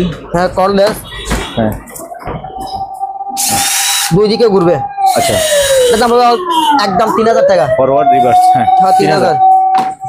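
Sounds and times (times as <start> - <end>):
loud hiss: 3.4 - 4.2.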